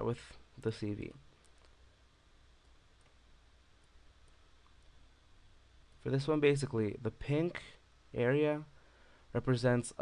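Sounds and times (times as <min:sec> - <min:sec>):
person speaking: 0:00.0 - 0:01.6, 0:06.0 - 0:08.7
low steady hum: 0:00.0 - 0:10.0.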